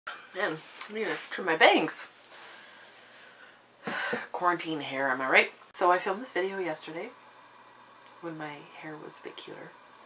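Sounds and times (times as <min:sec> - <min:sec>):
woman's voice: 0:00.3 - 0:02.2, 0:04.2 - 0:07.2, 0:08.2 - 0:09.8.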